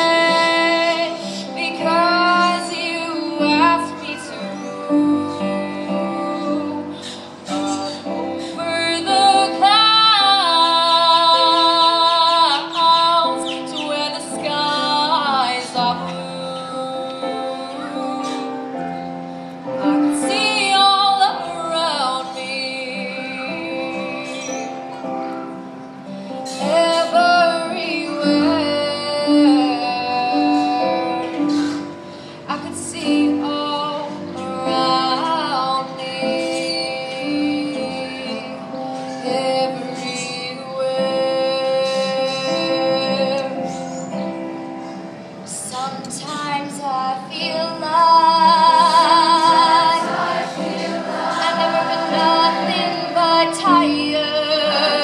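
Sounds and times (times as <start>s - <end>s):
instrumental accompaniment: 0.0s - 55.0s
choir singing held notes: 48.4s - 55.0s.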